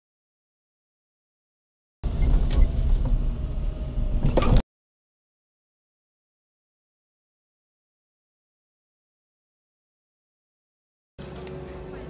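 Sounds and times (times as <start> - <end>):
car rolling rumble: 2.0 - 4.6.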